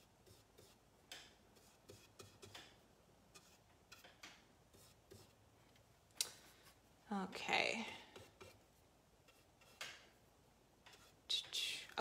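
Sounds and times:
paintbrush tapping and scraping: 0.0 - 12.0
soft breath: 6.2 - 6.9.

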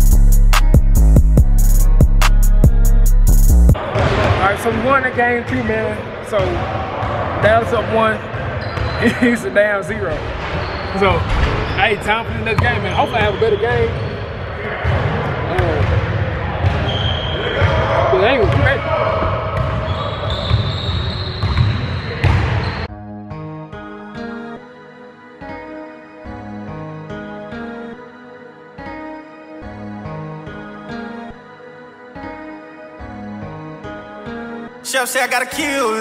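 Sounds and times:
music: 0.0 - 6.4, 22.3 - 36.0
players' voices: 3.8 - 21.3, 34.8 - 36.0
basketballs bouncing on hardwood floor: 14.8 - 16.9, 18.4 - 22.7.

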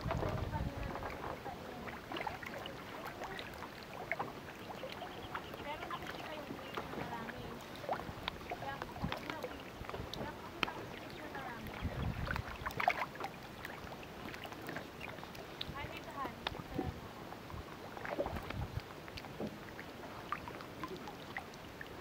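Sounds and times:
fish splashing at water surface: 1.9 - 16.8.

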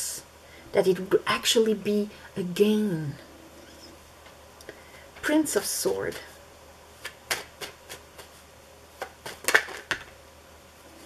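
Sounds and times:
cards being shuffled by hand: 7.0 - 10.2.

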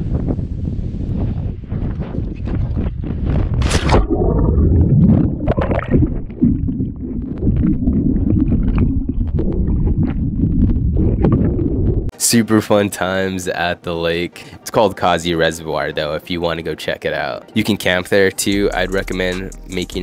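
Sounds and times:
wind buffeting microphone: 0.0 - 12.1
muffled underwater rushing: 3.3 - 12.1
camera splashing into water: 3.6 - 6.6.

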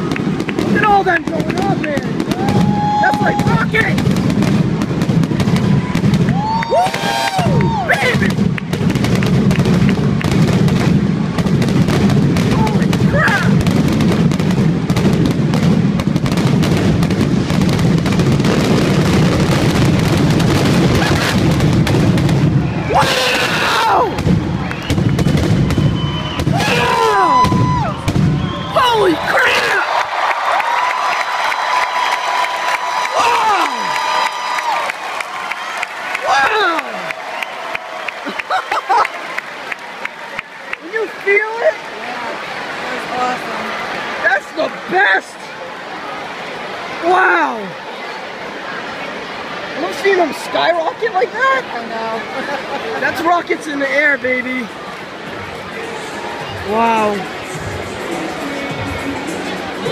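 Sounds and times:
crowd cheering and whistling: 0.0 - 11.4, 18.8 - 59.9
firework whistles: 24.0 - 28.8.

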